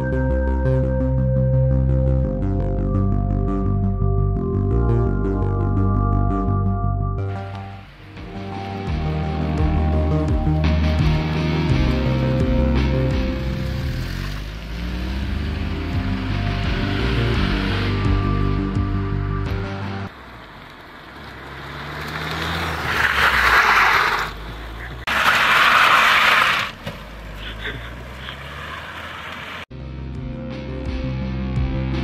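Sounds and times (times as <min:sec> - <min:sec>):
background music: 0:00.0 - 0:14.2, 0:14.8 - 0:20.1, 0:29.7 - 0:32.0
car engine driven hard: 0:07.3 - 0:29.7.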